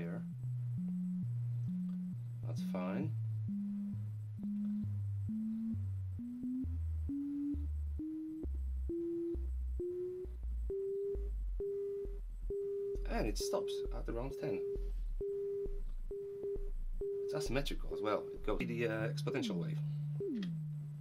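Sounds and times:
test tone flipping between pitches: 0.0s - 21.0s.

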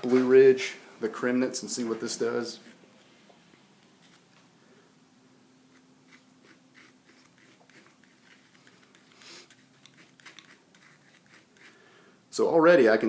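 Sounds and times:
faint steady hum: 0.0s - 13.0s
palette knife scraping canvas: 5.7s - 11.8s.

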